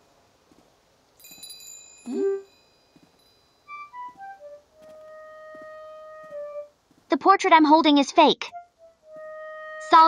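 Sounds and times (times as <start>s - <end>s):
small brass bell ringing: 1.2s - 3.9s.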